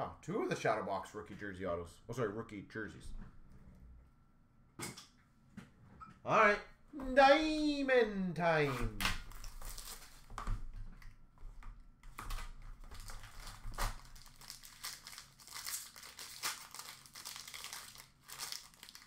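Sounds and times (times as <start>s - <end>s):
cards rustling: 8.6s - 10.3s
card wrapper crinkling and tearing: 9.1s - 10.3s, 12.2s - 19.0s.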